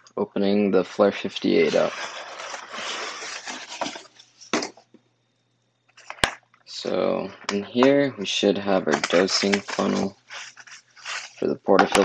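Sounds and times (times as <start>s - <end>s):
cardboard sliding on cardboard: 1.6s - 4.8s, 9.4s - 11.4s.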